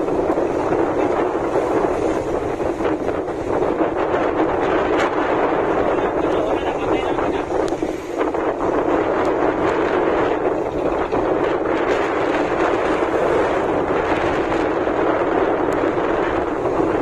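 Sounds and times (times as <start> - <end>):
strong wind buffeting microphone: 0.0 - 17.0.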